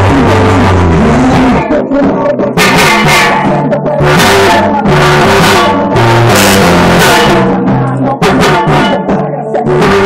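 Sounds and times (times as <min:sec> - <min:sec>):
pop song through tin-can loudspeaker: 0:00.0 - 0:10.0.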